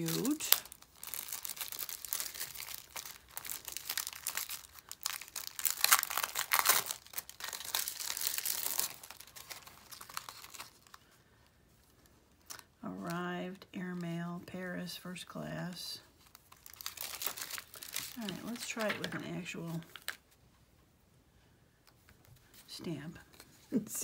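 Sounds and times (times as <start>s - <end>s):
plastic sheet crinkling: 0.0s - 11.1s, 16.2s - 20.3s.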